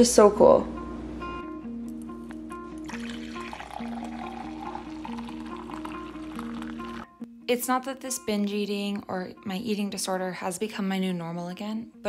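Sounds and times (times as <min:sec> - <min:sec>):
background music: 0:00.0 - 0:12.0
coffee pouring into a mug: 0:02.7 - 0:07.1.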